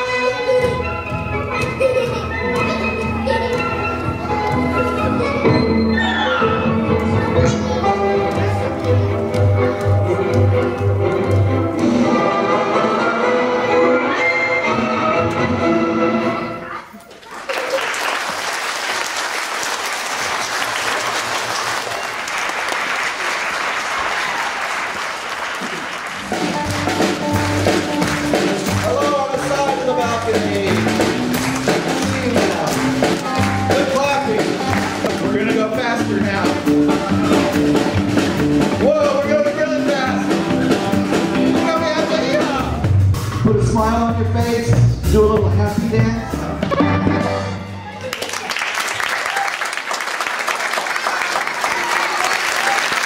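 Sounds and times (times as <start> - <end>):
orchestral music: 0.0 - 16.8, 25.5 - 48.2
children applauding: 16.9 - 35.4, 47.8 - 53.0.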